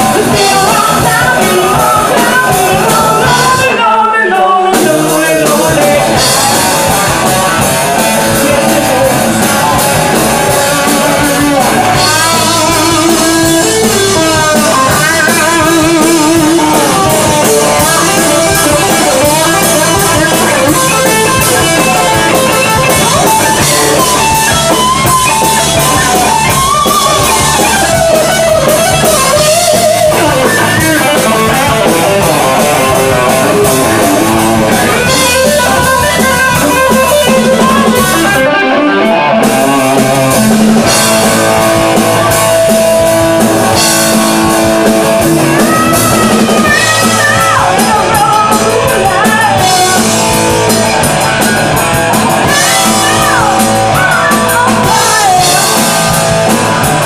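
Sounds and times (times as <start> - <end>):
drum kit: 0.0 - 3.9, 4.7 - 57.0
person singing: 0.0 - 51.5, 52.2 - 57.0
electric guitar lead line: 0.0 - 57.0.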